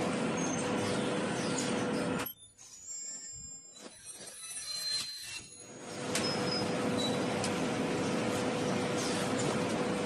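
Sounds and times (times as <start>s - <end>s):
loud steady machine noise: 0.0s - 2.3s, 5.6s - 10.0s
thin high whines: 1.6s - 7.2s.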